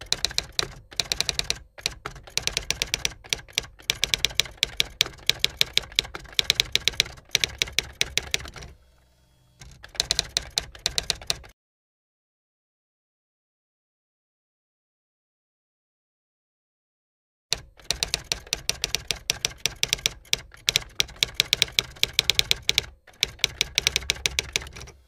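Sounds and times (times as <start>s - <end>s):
typewriter key clicks: 0.0s - 8.7s, 17.5s - 25.0s.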